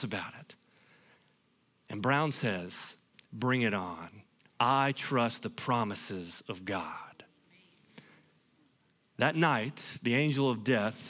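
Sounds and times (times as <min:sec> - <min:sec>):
faint breath: 0:00.6 - 0:01.4, 0:07.9 - 0:08.5.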